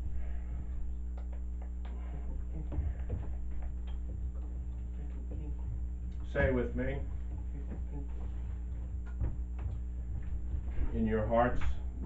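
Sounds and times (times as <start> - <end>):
low steady hum: 0.0 - 12.0
faint small ticks and taps: 1.1 - 6.3, 7.1 - 10.8.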